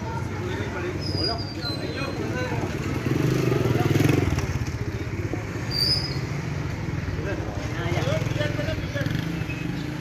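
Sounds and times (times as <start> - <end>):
outdoor street noise: 0.0 - 10.0.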